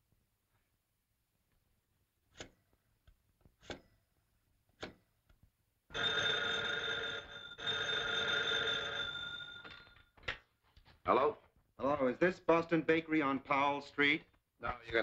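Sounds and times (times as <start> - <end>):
telephone bell ringing: 5.9 - 10.2.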